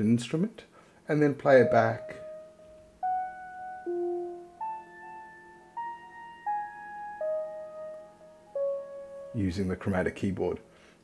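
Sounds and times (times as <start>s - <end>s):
synthesizer notes: 1.5s - 9.4s.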